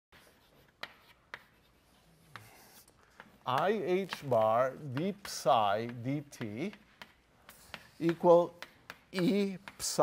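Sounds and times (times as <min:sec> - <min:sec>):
chalk tapping on blackboard: 0:00.2 - 0:10.0
faint room hiss: 0:00.2 - 0:10.0.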